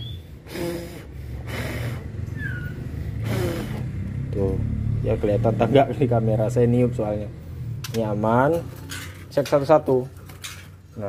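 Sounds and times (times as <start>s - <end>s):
high falling bird chirp: 0.0s - 0.3s, 2.3s - 2.9s
person blowing puffs of air: 0.0s - 3.9s.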